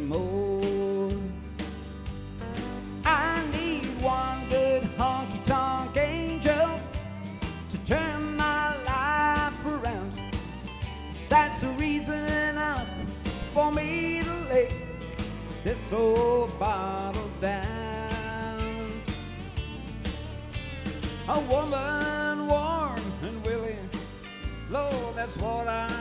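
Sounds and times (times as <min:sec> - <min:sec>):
country-rock band playing: 0:00.0 - 0:26.0
electric guitar bending notes: 0:00.0 - 0:26.0.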